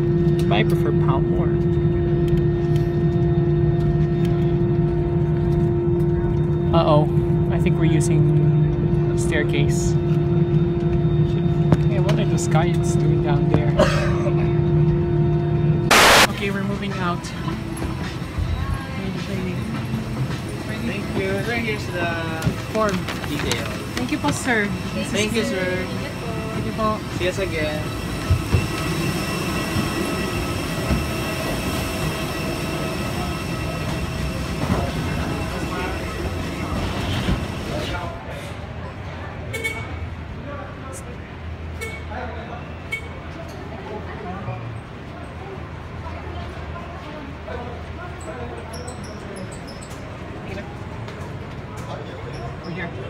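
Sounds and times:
high mechanical whine: 0.0s - 38.3s.

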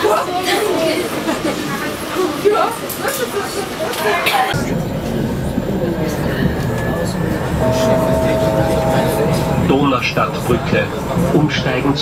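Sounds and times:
train rumbling over a bridge: 4.6s - 12.0s
electric whine: 7.6s - 10.0s.

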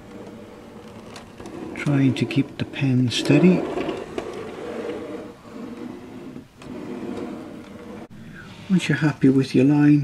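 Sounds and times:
model wagon wheels rolling on rails: 0.0s - 8.1s.

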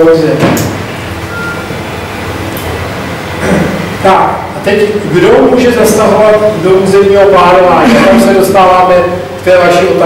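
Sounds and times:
low hum: 0.9s - 9.5s.

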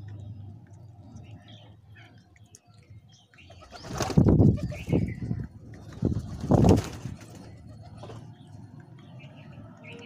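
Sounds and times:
bird wings flapping: 3.6s - 4.8s, 5.8s - 8.2s.

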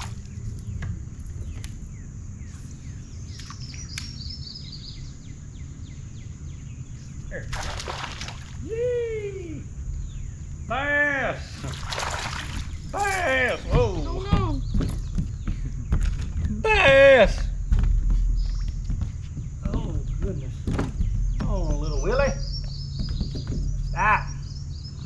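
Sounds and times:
fish splashing at surface: 7.5s - 8.6s, 11.6s - 12.8s
people shouting and exclaiming: 8.6s - 9.7s, 13.0s - 14.6s.

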